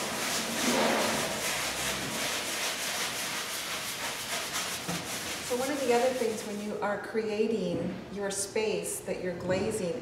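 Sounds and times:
cloth rubbing on wall: 0:00.0 - 0:06.6.

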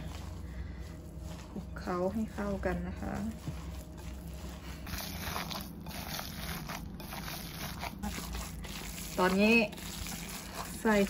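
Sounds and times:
plastic glove rustling: 0:00.0 - 0:11.0
squishing of wet mince: 0:00.0 - 0:11.0.

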